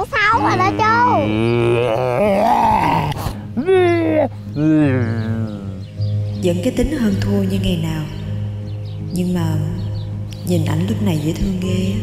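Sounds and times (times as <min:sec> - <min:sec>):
man making goofy groan: 0:00.4 - 0:05.8.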